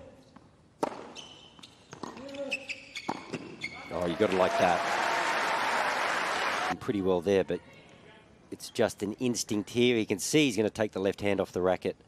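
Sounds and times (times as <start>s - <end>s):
tennis ball hitting rackets: 0.8s - 1.2s
sneakers squeaking on court: 0.8s - 3.9s.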